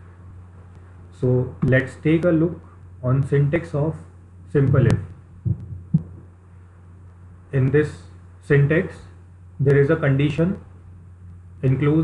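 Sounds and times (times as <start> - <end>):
low electrical hum: 0.0 - 12.0
soft low thumps: 4.6 - 6.5.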